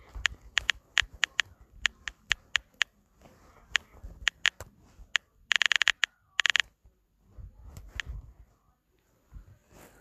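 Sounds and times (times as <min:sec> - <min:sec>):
phone keyboard tap clicks: 0:00.0 - 0:02.9, 0:05.5 - 0:06.6.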